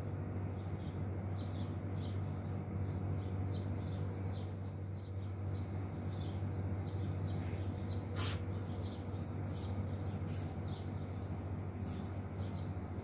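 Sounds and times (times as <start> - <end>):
birds chirping: 0.0 - 13.0
steady low hum: 0.0 - 13.0.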